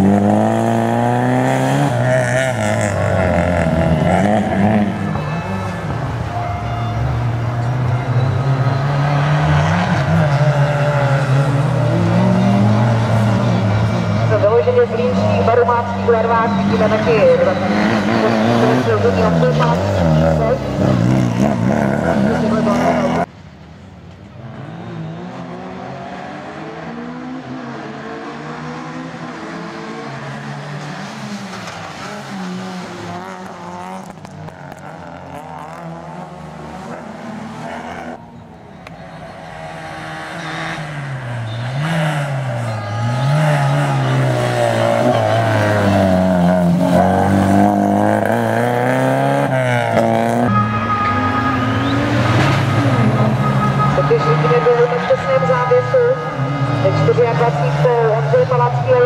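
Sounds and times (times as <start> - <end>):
rally car engine revving: 0.0 - 23.3, 24.4 - 59.0.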